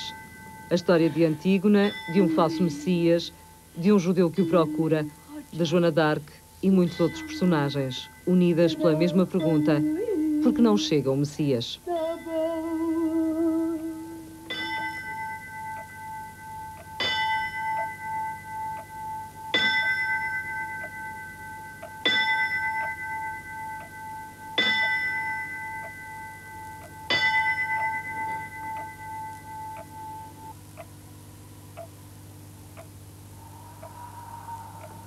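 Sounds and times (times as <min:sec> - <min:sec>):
bell ringing: 0:00.0 - 0:05.9.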